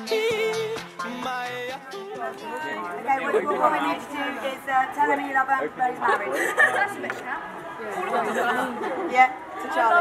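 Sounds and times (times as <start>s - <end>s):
people chattering: 0.2s - 10.0s.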